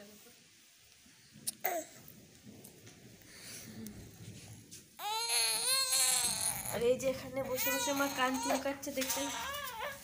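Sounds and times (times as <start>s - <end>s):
toddler crying out: 5.0s - 6.8s, 7.5s - 10.0s.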